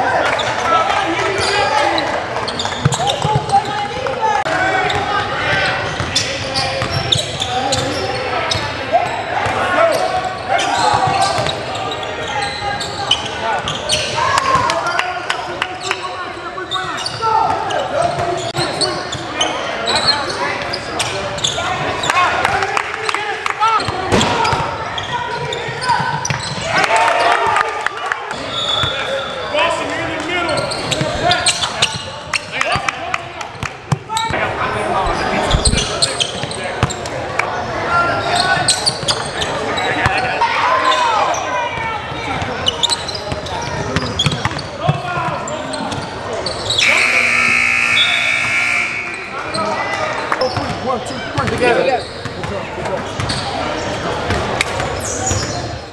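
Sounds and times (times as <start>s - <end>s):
steady buzzing tone: 46.8s - 49.2s.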